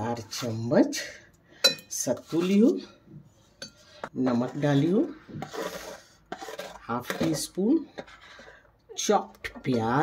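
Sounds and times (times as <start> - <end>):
spoon scraping plastic plate: 2.1 - 8.7.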